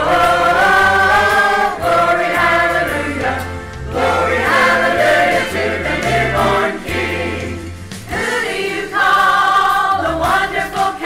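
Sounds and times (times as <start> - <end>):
choir singing gospel: 0.0 - 11.0.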